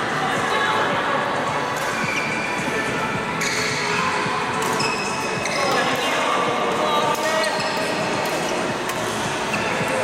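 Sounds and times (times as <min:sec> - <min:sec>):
shoes squeaking on court: 0:01.7 - 0:06.2, 0:07.2 - 0:10.0
racket striking shuttlecock: 0:04.6 - 0:05.2, 0:08.2 - 0:09.6.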